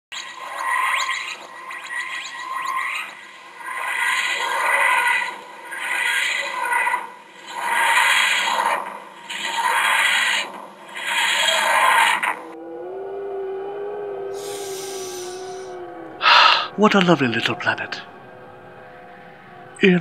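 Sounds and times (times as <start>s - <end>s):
steady held tone: 12.5s - 20.0s.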